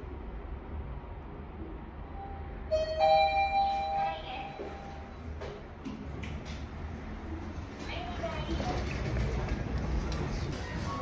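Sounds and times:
two-tone elevator chime: 0:02.7 - 0:05.0.

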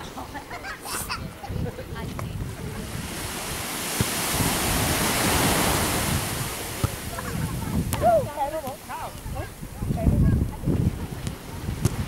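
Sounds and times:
sea water lapping: 0:00.0 - 0:12.0
wind buffeting microphone: 0:00.0 - 0:12.0.

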